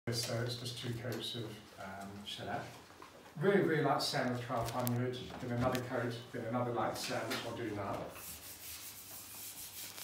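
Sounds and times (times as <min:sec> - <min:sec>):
sandpaper rubbing: 0:08.1 - 0:10.0.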